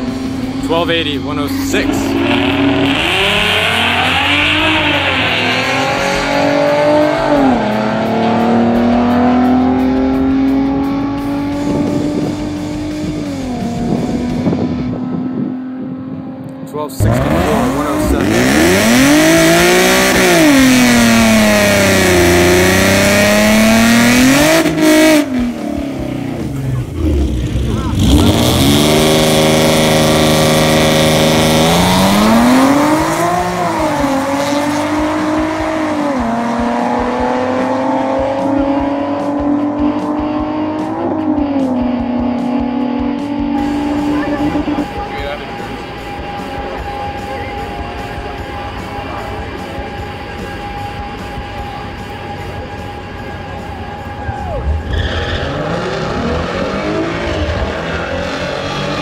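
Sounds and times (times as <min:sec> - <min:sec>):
car engine accelerating hard: 0:00.0 - 0:59.0
car engine revving: 0:00.0 - 0:59.0.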